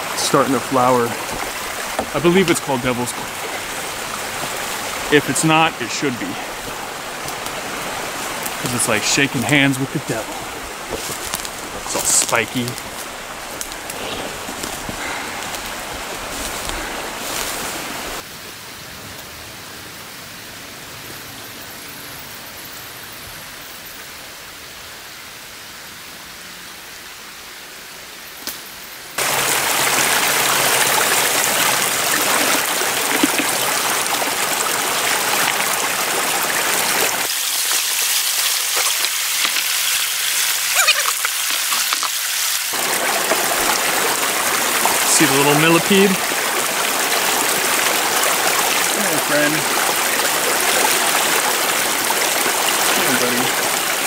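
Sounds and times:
creek water rushing over rocks: 0:00.0 - 0:18.2, 0:29.2 - 0:54.0.

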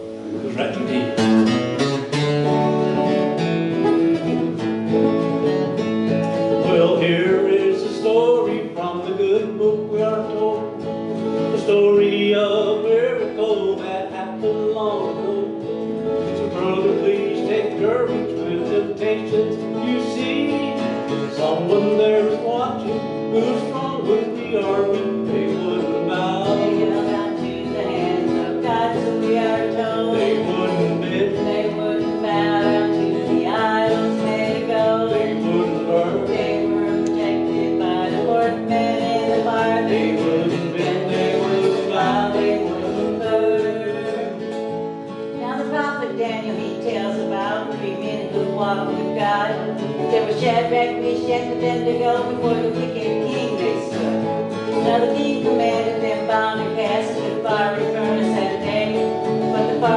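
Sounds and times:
country gospel band playing: 0:00.0 - 0:59.9
electric guitar melody: 0:00.0 - 0:59.9
strummed acoustic guitar: 0:00.0 - 0:59.9.

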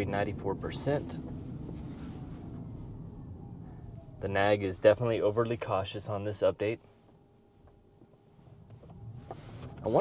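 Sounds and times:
road and tyre rumble: 0:00.0 - 0:10.0
faint falling whine: 0:00.1 - 0:10.0.

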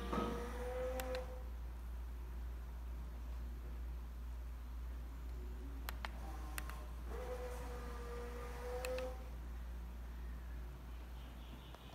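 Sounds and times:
roller blind motor humming: 0:00.0 - 0:01.6, 0:06.1 - 0:09.4.

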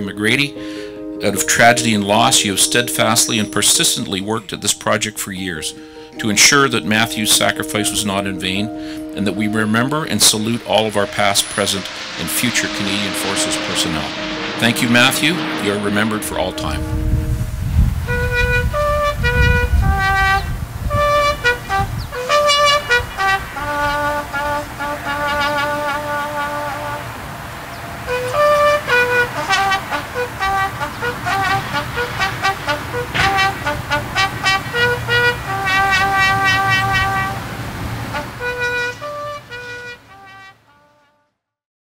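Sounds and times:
solo trumpet bugle call: 0:18.0 - 0:41.4.

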